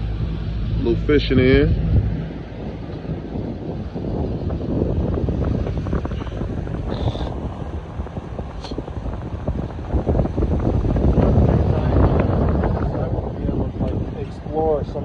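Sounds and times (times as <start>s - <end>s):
boat engine: 0.0s - 15.0s
water noise: 0.0s - 15.0s
wind buffeting microphone: 0.0s - 15.0s.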